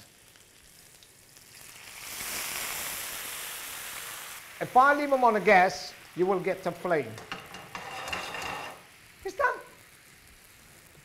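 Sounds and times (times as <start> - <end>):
butter sizzling in a frying pan: 0.0 - 11.0
loud steady hiss of boiling: 0.0 - 11.0.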